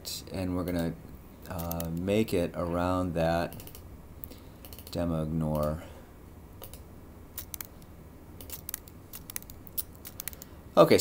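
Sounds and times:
mouse and keyboard clicks: 0:06.6 - 0:06.8, 0:07.4 - 0:10.5.

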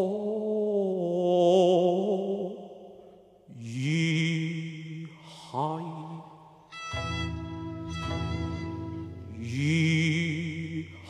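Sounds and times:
opera singer singing: 0:00.0 - 0:02.9, 0:03.5 - 0:06.7, 0:08.2 - 0:11.0.

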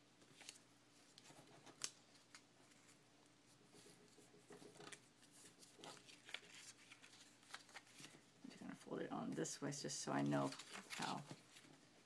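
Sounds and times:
paper crackling and rustling: 0:00.2 - 0:03.0, 0:03.7 - 0:08.9, 0:10.0 - 0:12.0.

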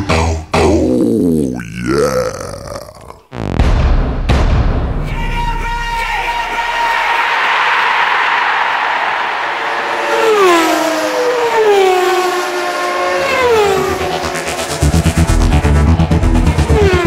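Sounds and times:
racing car engines passing: 0:07.9 - 0:17.0.

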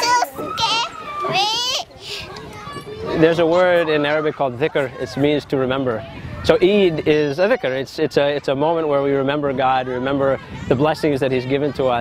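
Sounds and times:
children playing: 0:00.0 - 0:12.0.

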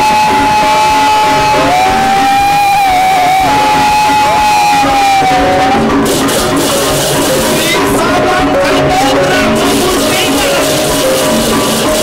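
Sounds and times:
man singing high note: 0:00.0 - 0:05.9, 0:07.5 - 0:10.8
band music with guitar: 0:00.0 - 0:12.0.

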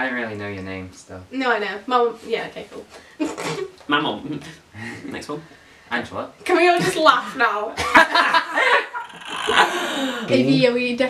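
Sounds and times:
young people laughing: 0:07.8 - 0:10.4.

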